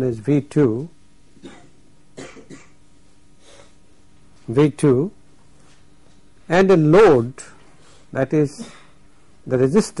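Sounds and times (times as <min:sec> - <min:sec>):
man speaking: 0:00.0 - 0:00.9, 0:04.5 - 0:05.2, 0:06.5 - 0:07.6, 0:08.2 - 0:08.7, 0:09.4 - 0:10.0
man clearing his throat: 0:01.4 - 0:02.8, 0:08.5 - 0:09.0.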